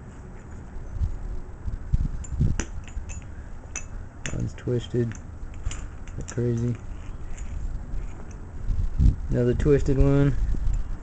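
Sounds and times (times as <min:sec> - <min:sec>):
metal parts bumping and scraping: 0:02.2 - 0:08.5.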